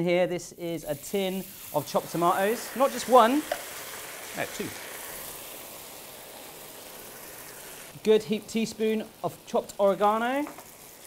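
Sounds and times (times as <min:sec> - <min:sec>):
frying pan sizzling: 0:00.3 - 0:11.0.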